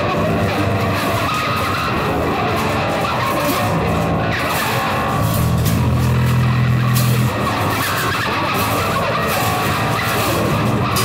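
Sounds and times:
rock band music: 0.0s - 11.0s.

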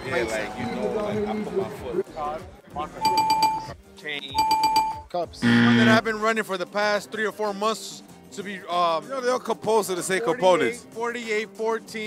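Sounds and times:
electronic bell ringing: 3.0s - 3.7s, 4.4s - 6.0s.

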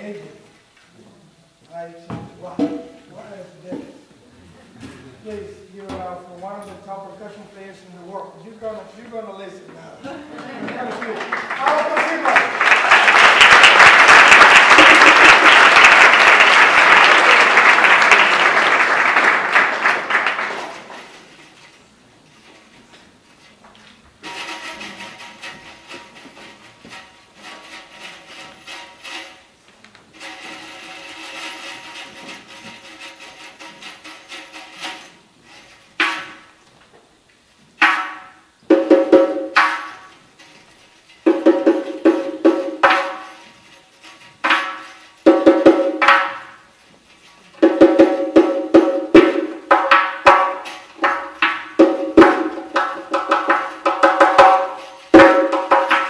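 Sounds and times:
applause: 10.4s - 21.1s
frame drum with jingles: 24.2s - 36.6s, 37.8s - 56.0s.

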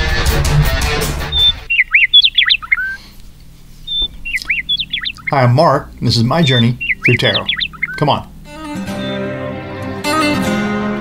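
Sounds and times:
bird chirping and whistling: 1.3s - 3.0s, 3.8s - 5.5s, 6.2s - 8.2s, 8.9s - 9.3s
strummed guitar: 8.4s - 11.0s.

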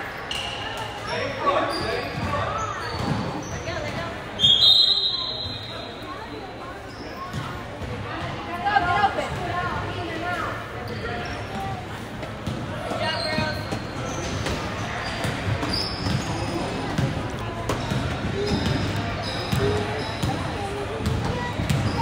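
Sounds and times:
voices in a hall: 0.0s - 22.0s.

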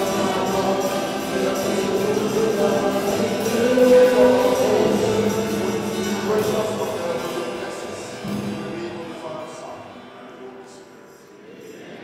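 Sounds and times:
light percussion: 0.0s - 9.0s
gospel worship music: 0.0s - 12.0s.

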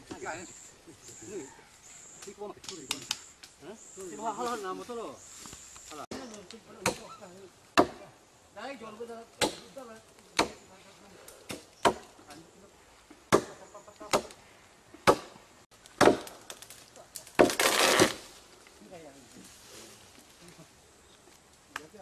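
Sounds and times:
blade chopping into wood: 7.8s - 8.0s, 15.0s - 15.3s, 16.0s - 16.5s, 17.4s - 18.2s
branches crashing down: 15.8s - 20.6s.

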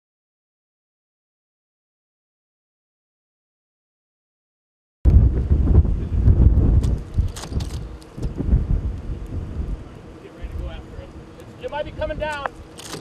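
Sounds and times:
thunder rumble: 5.1s - 9.8s
storm wind: 5.1s - 13.0s.

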